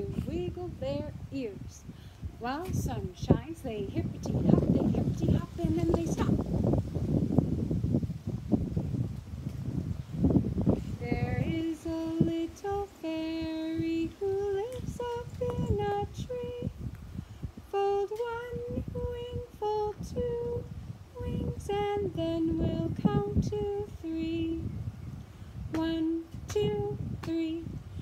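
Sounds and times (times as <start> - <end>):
woman singing unaccompanied: 0.0 - 6.6, 10.9 - 16.9, 17.6 - 24.9, 25.7 - 28.0.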